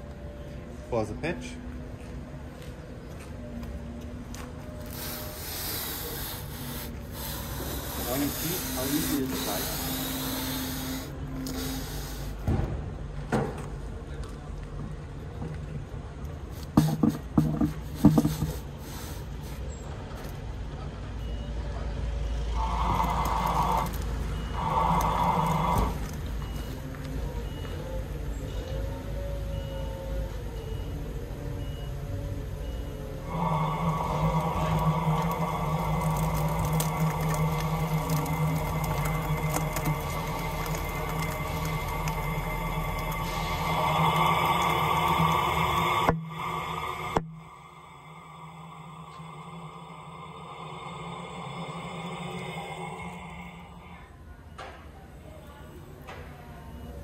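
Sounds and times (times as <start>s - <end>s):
mechanical noise with low hum: 1.6s - 57.0s
faint beep: 21.2s - 22.6s, 26.4s - 31.0s, 31.6s - 33.2s, 51.6s - 57.0s.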